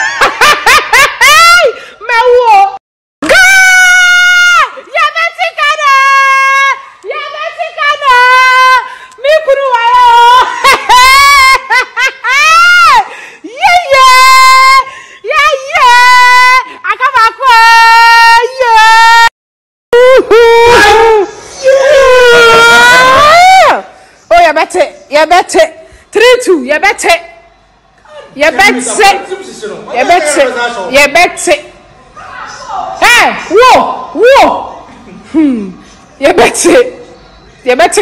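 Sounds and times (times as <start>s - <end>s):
high voice shouting cries: 20.0s - 23.8s.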